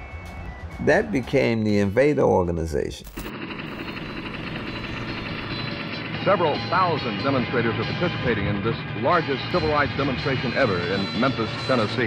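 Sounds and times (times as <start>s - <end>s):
helicopter rotor chopping: 3.2s - 12.0s.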